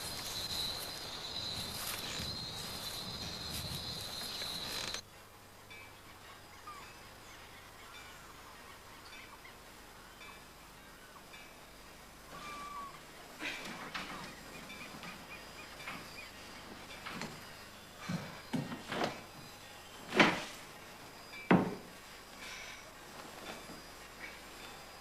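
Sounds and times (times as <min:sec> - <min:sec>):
bird calls: 0:00.0 - 0:05.0, 0:05.7 - 0:11.4, 0:12.3 - 0:20.2
high insect trill: 0:00.0 - 0:05.0, 0:11.3 - 0:25.0.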